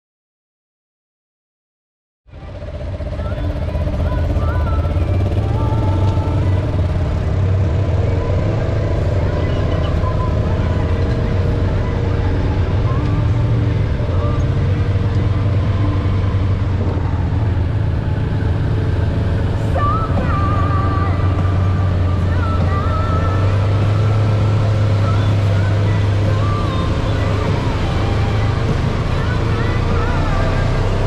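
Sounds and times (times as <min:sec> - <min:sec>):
off-road vehicle engines droning: 0:02.3 - 0:31.0.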